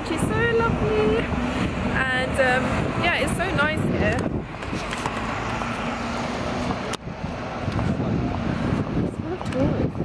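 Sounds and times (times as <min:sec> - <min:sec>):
rumble of passing vehicles: 0:00.0 - 0:10.0.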